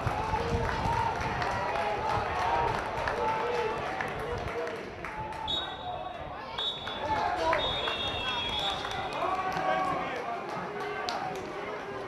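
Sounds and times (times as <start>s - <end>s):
referee's whistle blasts: 5.4s - 9.2s
players calling: 5.4s - 12.0s.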